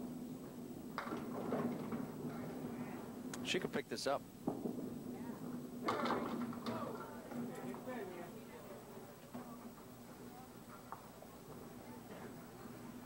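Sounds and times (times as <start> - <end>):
low background hum: 0.0 - 13.0
bowling pins clattering: 0.9 - 2.8, 4.4 - 8.1
voices: 5.0 - 13.0.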